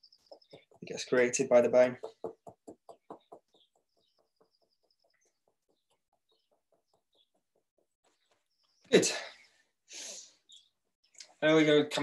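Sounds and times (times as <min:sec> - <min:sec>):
fingertips tapping on head: 0:01.8 - 0:08.5.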